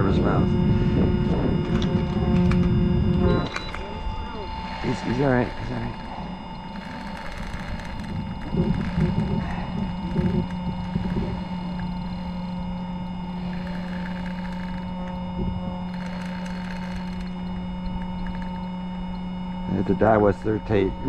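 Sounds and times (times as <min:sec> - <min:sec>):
faint voices: 0:00.0 - 0:11.6
electric trolling motor humming: 0:00.0 - 0:21.0.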